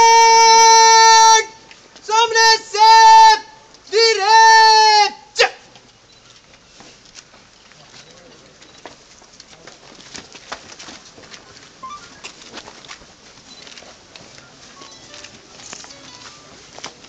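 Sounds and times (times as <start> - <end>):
crowd shuffling and murmuring: 1.5 - 2.1, 5.6 - 17.0.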